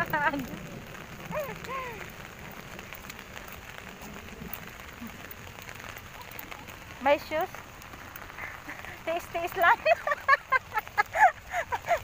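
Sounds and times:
heavy rain on pavement: 0:00.0 - 0:12.0.

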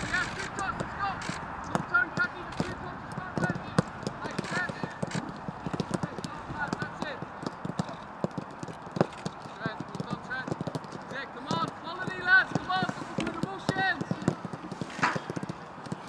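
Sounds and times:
footballs being kicked: 0:00.1 - 0:16.0.

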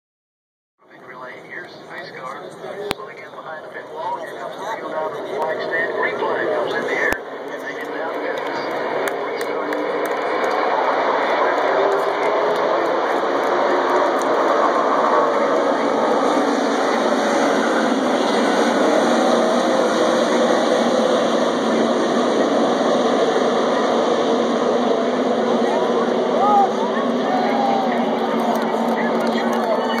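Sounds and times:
racing car engines: 0:00.8 - 0:30.0.

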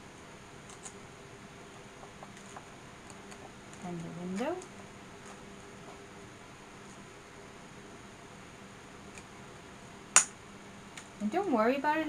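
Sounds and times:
room hiss: 0:00.0 - 0:12.0
sharp click: 0:10.2 - 0:10.4.

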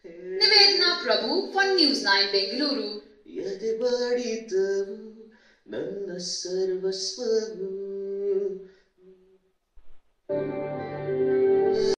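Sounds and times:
man singing unaccompanied: 0:03.3 - 0:09.3.

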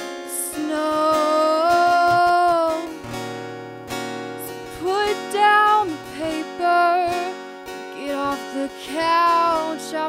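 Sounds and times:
woman singing: 0:00.0 - 0:03.1, 0:04.4 - 0:10.0
acoustic guitar strumming: 0:00.0 - 0:10.0.

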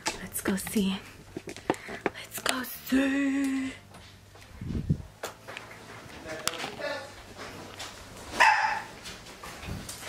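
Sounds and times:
dog barking: 0:08.3 - 0:09.0.

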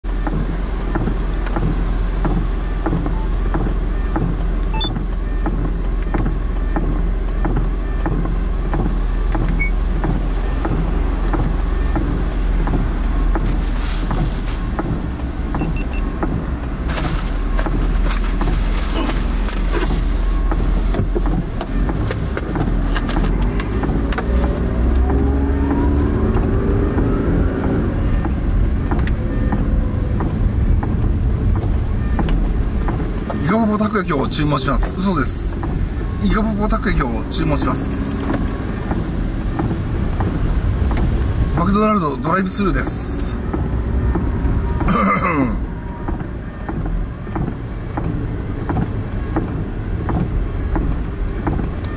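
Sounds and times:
car engine hum from inside: 0:00.0 - 0:51.9
rising engine whine: 0:09.2 - 0:51.9.

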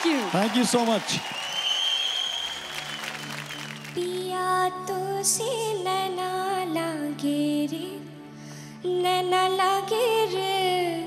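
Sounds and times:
audience applauding: 0:00.0 - 0:04.3
long high whistle: 0:01.2 - 0:03.9.

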